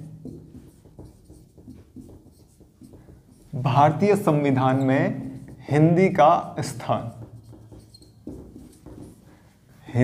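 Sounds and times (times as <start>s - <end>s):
marker pen on whiteboard: 0.0s - 10.0s.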